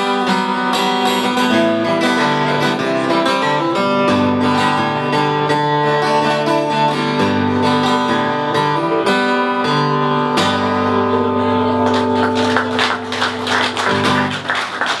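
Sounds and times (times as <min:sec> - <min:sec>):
acoustic guitar strumming: 0:00.0 - 0:14.6.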